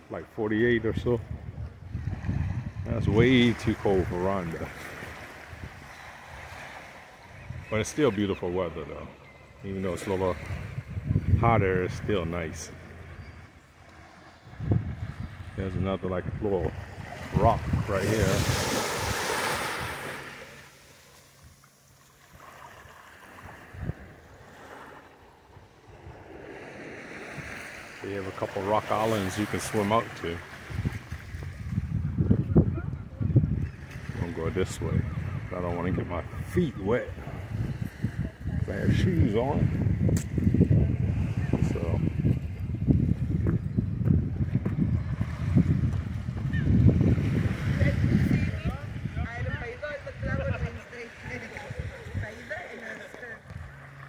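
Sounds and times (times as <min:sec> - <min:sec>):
wind buffeting microphone: 0:00.6 - 0:20.3, 0:23.3 - 0:24.6, 0:25.5 - 0:54.0
small waves washing on sand: 0:01.6 - 0:32.1, 0:33.4 - 0:43.6, 0:44.4 - 0:54.0.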